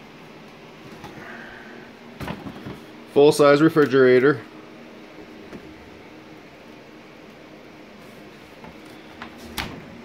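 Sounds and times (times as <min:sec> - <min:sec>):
indoor machinery humming: 0:00.0 - 0:10.0.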